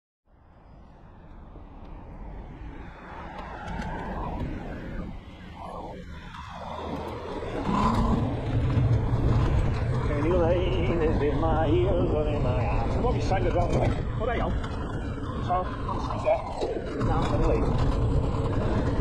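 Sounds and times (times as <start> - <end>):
road and traffic noise: 0.3 - 19.0
wind rumbling on microphone: 0.3 - 19.0.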